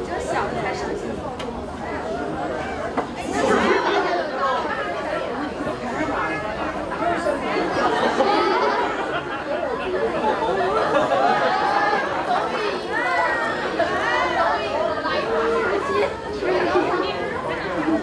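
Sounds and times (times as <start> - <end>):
babble of overlapping voices: 0.0 - 18.0.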